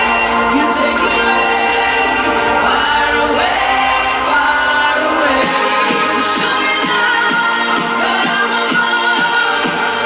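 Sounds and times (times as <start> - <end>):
dance music over a pa: 0.0 - 10.0
woman singing: 0.0 - 10.0.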